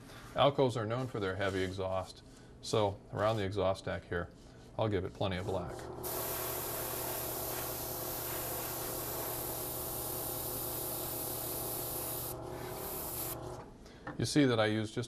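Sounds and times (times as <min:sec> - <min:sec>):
airbrush spraying hiss: 0:06.0 - 0:13.6.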